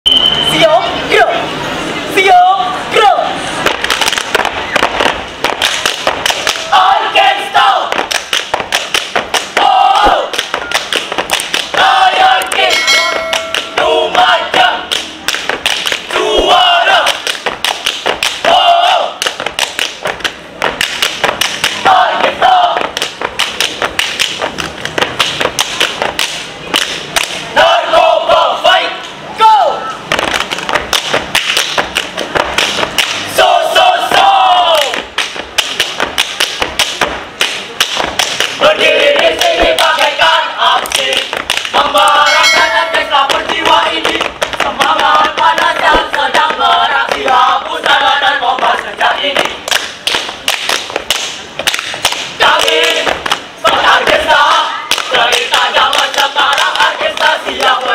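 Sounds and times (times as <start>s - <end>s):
group shouting calls: 6.5s - 7.9s, 9.6s - 10.3s, 18.5s - 19.2s, 27.6s - 30.0s.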